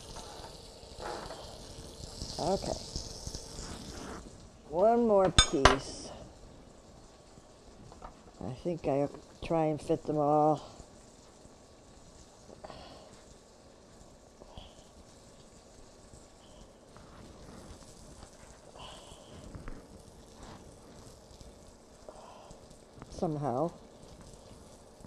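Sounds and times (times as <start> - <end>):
chicken frying in butter: 0.0 - 25.0.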